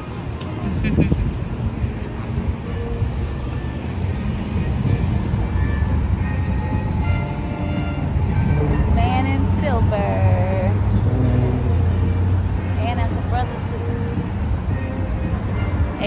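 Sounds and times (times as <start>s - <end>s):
music playing: 0.0s - 16.0s
passing cars rumbling: 0.0s - 16.0s.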